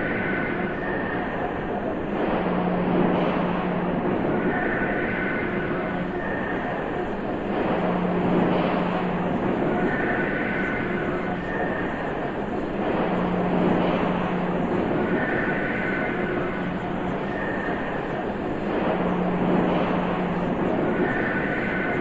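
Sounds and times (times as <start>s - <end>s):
dense mechanical noise drone: 0.0s - 22.0s
low looping hum: 0.0s - 22.0s.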